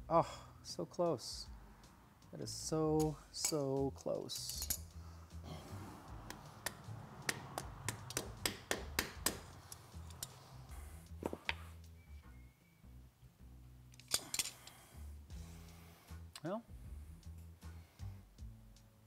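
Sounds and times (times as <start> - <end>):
background music: 0.0 - 19.0
mallet tapping metal: 6.3 - 9.5.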